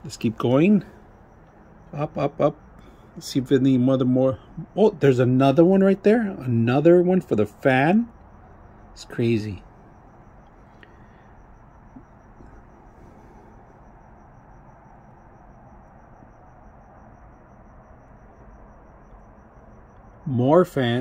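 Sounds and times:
background hiss and hum: 0:00.0 - 0:21.0
high-pitched pulsing tone: 0:00.0 - 0:21.0.

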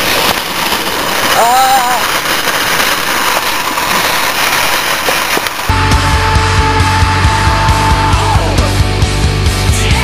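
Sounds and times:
heavy rock music: 0:05.7 - 0:10.0.

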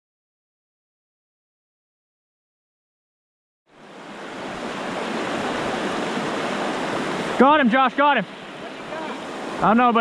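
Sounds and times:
water rushing over rocks: 0:03.8 - 0:10.0.

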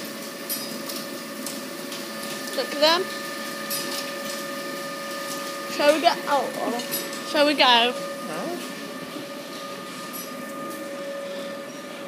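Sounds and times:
machinery hum: 0:00.0 - 0:12.0.

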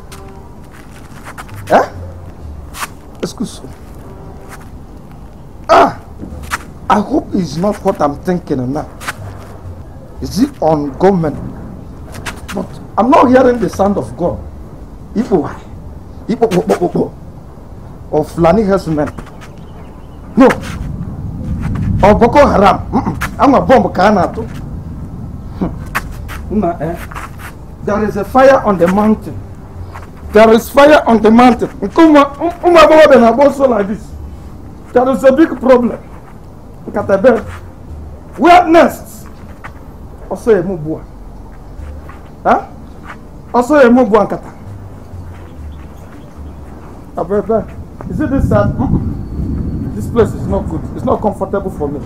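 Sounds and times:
low rumbling background noise: 0:00.0 - 0:52.0.

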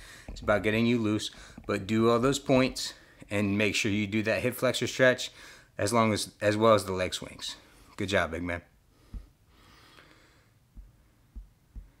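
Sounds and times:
soft low thumps: 0:00.0 - 0:00.8, 0:09.1 - 0:09.4, 0:10.7 - 0:12.0.

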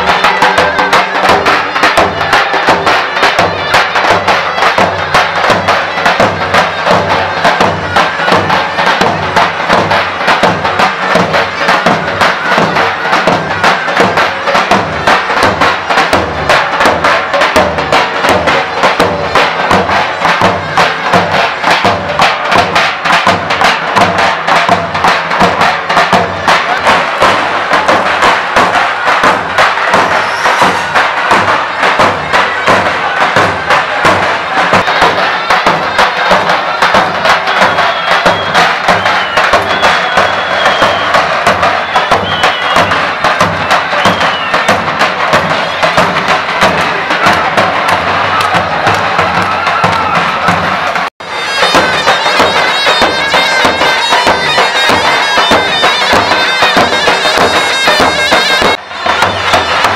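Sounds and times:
crowd noise: 0:00.0 - 0:59.9
shrill reedy zurna: 0:25.8 - 0:59.9.

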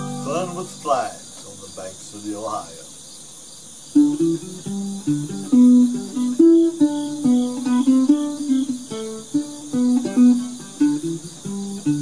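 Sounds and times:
ukulele strumming: 0:00.0 - 0:01.4, 0:03.9 - 0:12.0
crickets chirping: 0:00.0 - 0:12.0.

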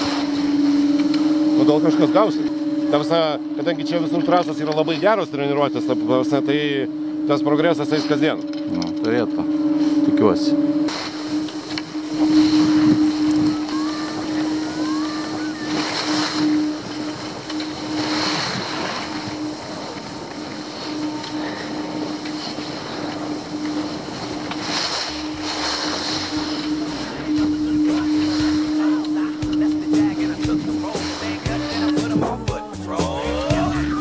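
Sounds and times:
steady low hum: 0:00.0 - 0:34.0
skis scraping over snow: 0:09.8 - 0:32.4
wind rushing over microphone: 0:10.9 - 0:32.4.

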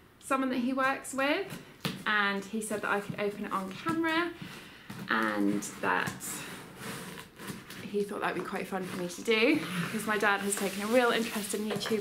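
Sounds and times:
woman speaking: 0:00.2 - 0:04.4, 0:05.1 - 0:06.5, 0:07.9 - 0:12.0
woman breathing in: 0:04.4 - 0:05.0.

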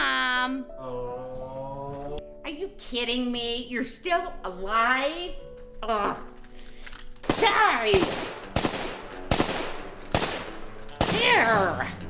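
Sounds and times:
gunshots: 0:07.2 - 0:11.8.

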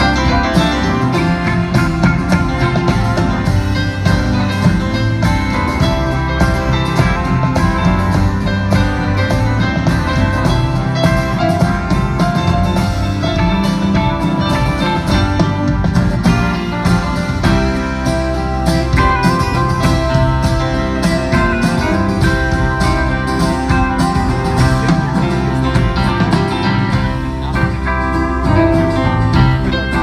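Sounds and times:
guitar: 0:00.0 - 0:30.0
live band instrumental: 0:00.0 - 0:30.0.

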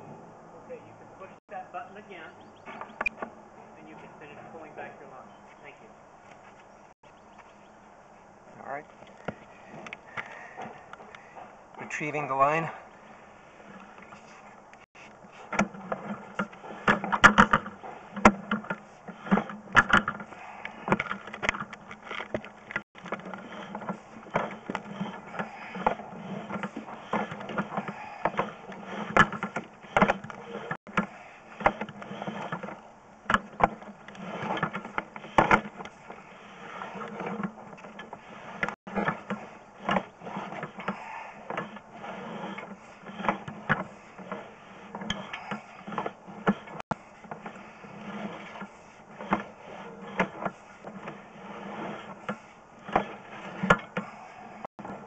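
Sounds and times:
cable reel mechanical rattle: 0:15.0 - 0:55.0
sharp clicks and knocks: 0:15.5 - 0:55.0.

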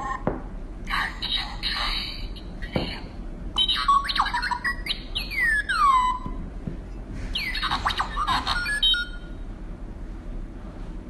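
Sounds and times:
electronic chirping tones: 0:07.4 - 0:09.4.

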